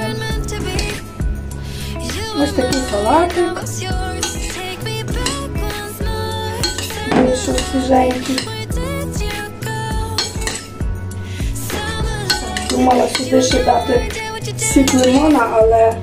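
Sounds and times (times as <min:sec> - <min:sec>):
background music: 0:00.0 - 0:16.0
fork scraping ceramic bowl: 0:04.2 - 0:04.6.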